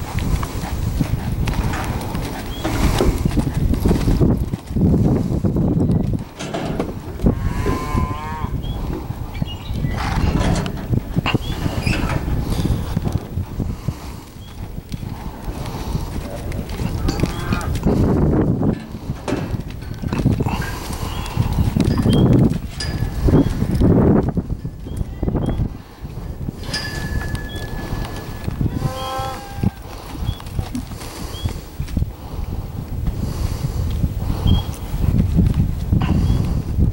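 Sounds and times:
horse hoofbeats on dirt: 0.0 - 36.9
wavering livestock call: 27.6 - 29.8.

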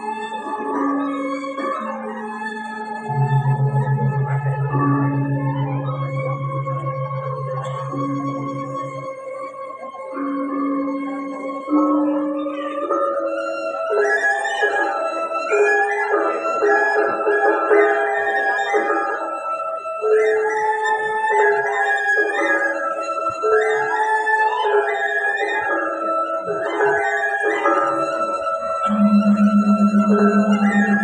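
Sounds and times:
gamelan playing: 3.0 - 9.6, 28.8 - 31.0.

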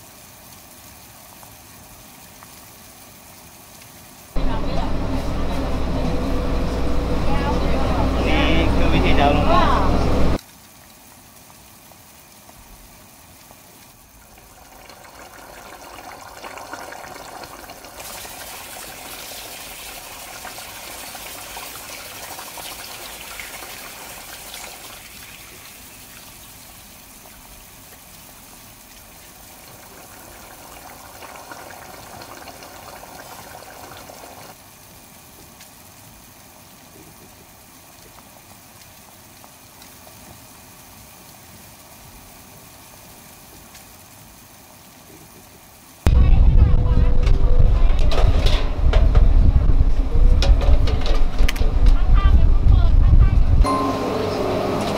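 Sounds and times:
broth boiling and bubbling: 0.0 - 54.8.

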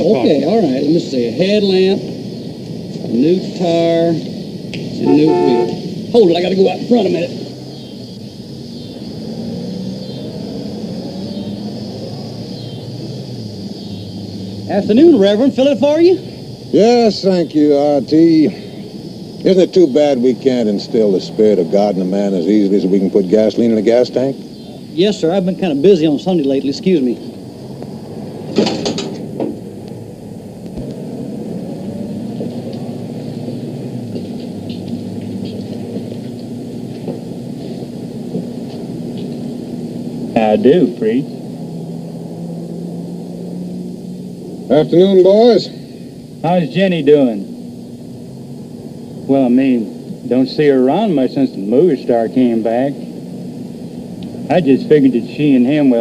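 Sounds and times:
car engine idling: 0.0 - 56.0
low mechanical hum: 17.8 - 56.0.

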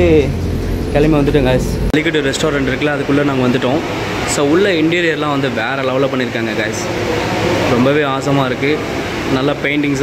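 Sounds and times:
man talking: 0.0 - 10.0
steady background noise: 0.0 - 10.0.

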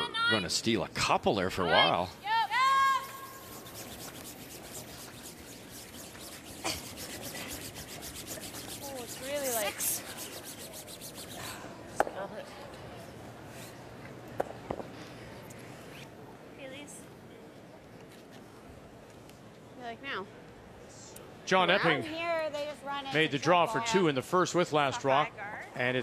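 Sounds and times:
brooms scrubbing on ice: 2.2 - 11.6.

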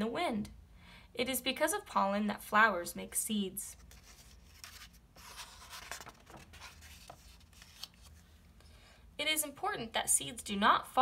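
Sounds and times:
paper page rustling: 3.7 - 8.4.

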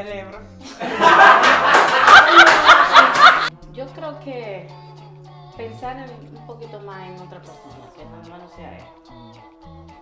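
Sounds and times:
loud laughter: 0.8 - 3.5.

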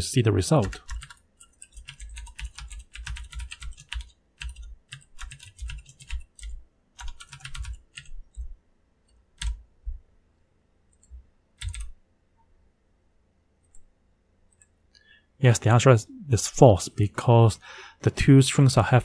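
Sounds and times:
computer keyboard typing: 0.5 - 8.5, 9.4 - 9.6, 10.9 - 12.0.

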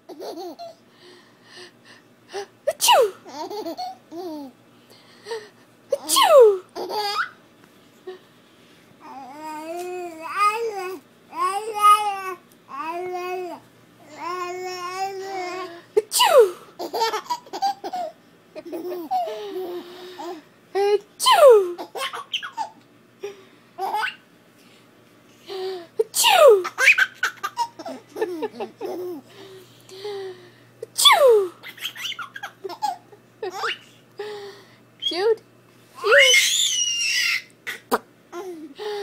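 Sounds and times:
baby giggling: 0.1 - 0.8, 3.3 - 4.6, 6.0 - 7.4, 15.2 - 20.4, 26.0 - 29.2, 31.2 - 33.9
adult fake sneeze: 2.7 - 3.2, 6.0 - 6.6, 16.0 - 16.6, 21.2 - 21.8, 26.0 - 26.8, 31.0 - 31.6.

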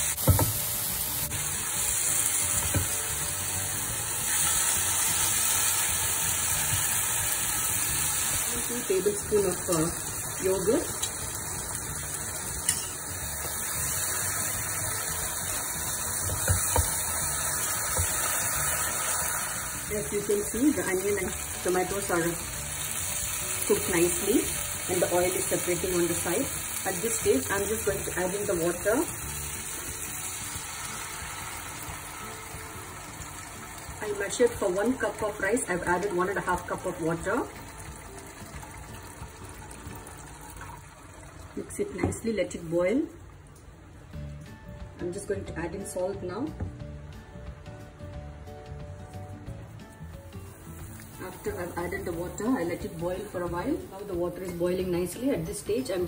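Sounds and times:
masala sizzling in a frying pan: 0.0 - 44.6, 48.7 - 56.0
utensils knocking against pan: 0.2 - 0.6, 12.6 - 13.0
water pouring into a pan: 29.2 - 41.8.

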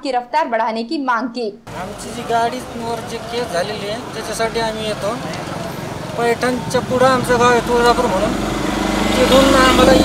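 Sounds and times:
street noise: 1.6 - 10.0
man speaking: 1.7 - 5.3, 6.2 - 8.4, 9.2 - 10.0
vehicle engine running: 1.7 - 10.0.

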